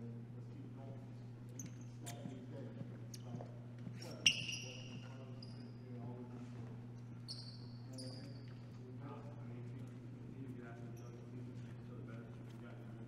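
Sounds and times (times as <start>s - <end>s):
steady low hum: 0.0s - 13.0s
sneakers squeaking on court: 1.5s - 5.9s, 7.1s - 8.8s.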